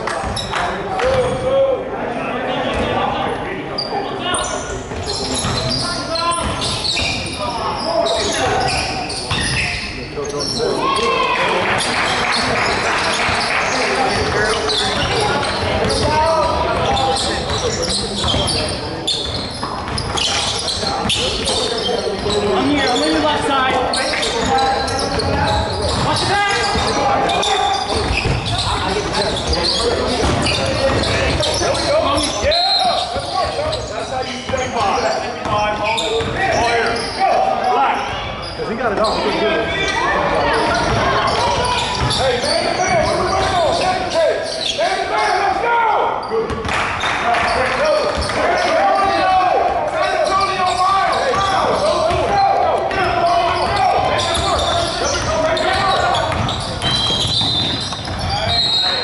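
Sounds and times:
voices calling out: 0:02.4 - 0:59.0
ball bouncing on wooden court: 0:14.1 - 0:21.6, 0:24.4 - 0:27.0, 0:27.9 - 0:31.7, 0:36.2 - 0:36.4, 0:40.7 - 0:42.2, 0:46.5 - 0:47.1, 0:51.3 - 0:58.7.

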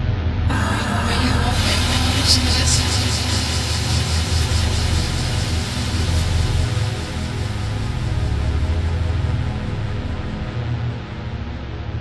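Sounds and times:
low rumbling drone: 0:00.3 - 0:11.2
dense hiss: 0:00.5 - 0:09.8.

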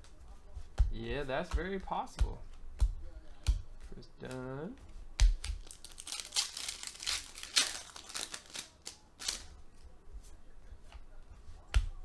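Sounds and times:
cards rustling: 0:05.4 - 0:09.6
foil packs ripping and crinkling: 0:05.6 - 0:09.4.

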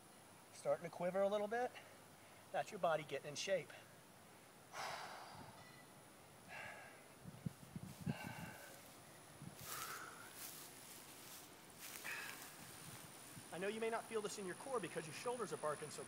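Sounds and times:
man exhaling forcefully: 0:04.7 - 0:05.6.

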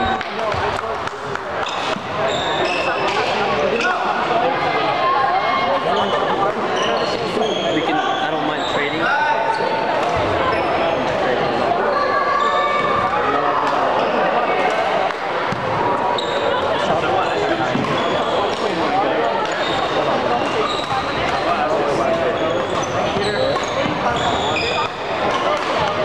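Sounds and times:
sneakers squeaking on hardwood: 0:17.2 - 0:18.8, 0:19.5 - 0:25.2.

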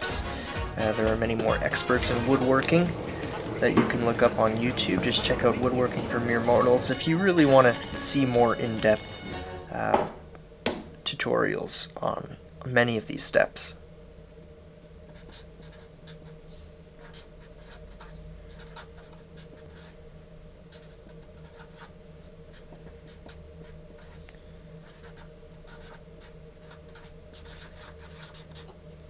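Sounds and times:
steady low hum: 0:00.0 - 0:29.0
marker writing on paper: 0:15.1 - 0:16.4, 0:17.0 - 0:20.0, 0:20.7 - 0:21.9, 0:24.8 - 0:28.8.

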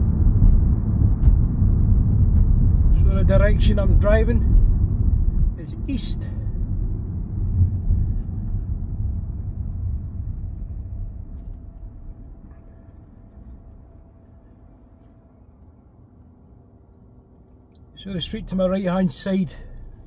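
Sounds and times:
car driving rumble from cabin: 0:00.0 - 0:14.2.

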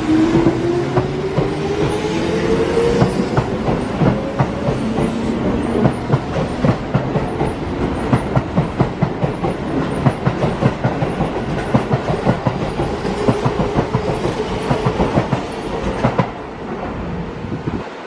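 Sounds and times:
train wheels clacking over rails: 0:00.0 - 0:16.4
train rumble: 0:00.0 - 0:18.0.

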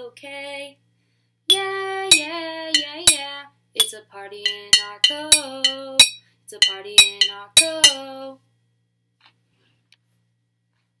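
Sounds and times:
glass jars tapped ringing: 0:01.5 - 0:03.2, 0:03.8 - 0:08.0.

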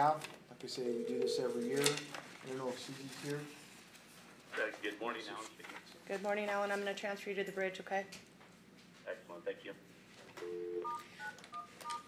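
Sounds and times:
telephone keypad tones: 0:01.0 - 0:01.7, 0:10.4 - 0:12.0.

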